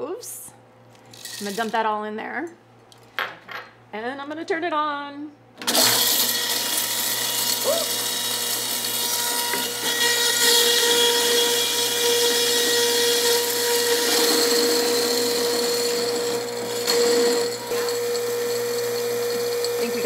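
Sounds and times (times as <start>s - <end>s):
electric grinder humming: 5.6s - 20.0s.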